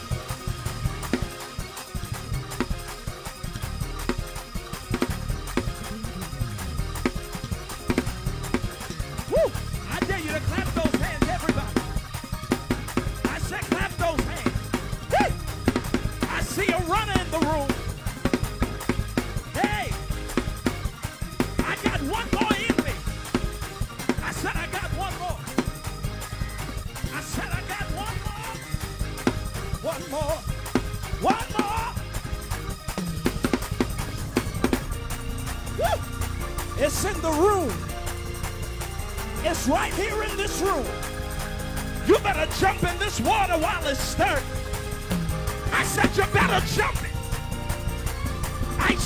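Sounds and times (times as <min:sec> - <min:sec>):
drums: 0:00.0 - 0:49.0
organ playing fast chords: 0:00.0 - 0:49.0.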